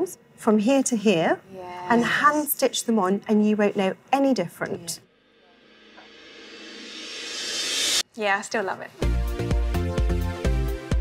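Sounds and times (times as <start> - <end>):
rising whoosh: 5.1 - 8.0.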